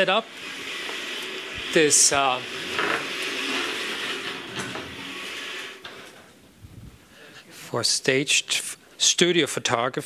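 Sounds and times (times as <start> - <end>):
scraping sliding noise: 0.0 - 7.1.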